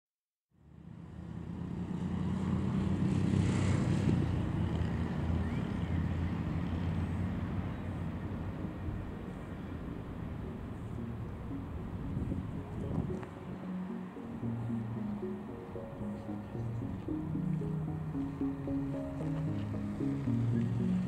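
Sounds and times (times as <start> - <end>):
road traffic rumble: 0.6 - 21.0.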